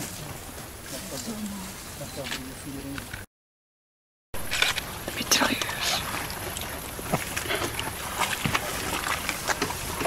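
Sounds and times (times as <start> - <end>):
deer splashing through water: 4.8 - 10.0.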